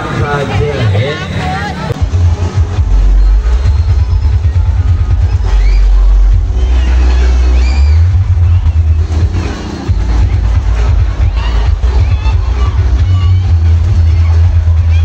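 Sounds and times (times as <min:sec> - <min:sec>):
music with booming bass: 0:01.9 - 0:15.0.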